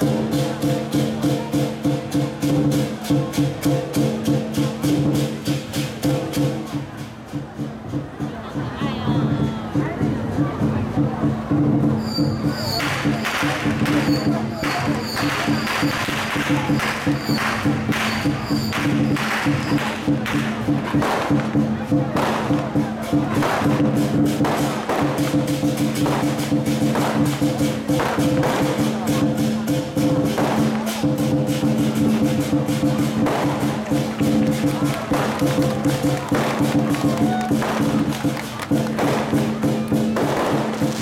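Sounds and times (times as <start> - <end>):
war drum beating: 0.0 - 41.0
cymbals crashing: 11.8 - 41.0.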